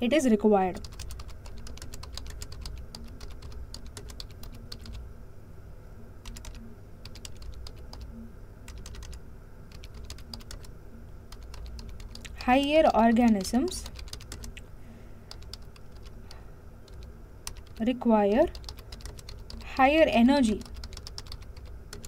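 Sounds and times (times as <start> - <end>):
typing on computer keyboard: 0.8 - 5.0, 6.2 - 8.1, 8.7 - 10.7, 11.3 - 14.6, 15.3 - 16.3, 16.9 - 17.8, 18.5 - 19.8, 20.6 - 22.0.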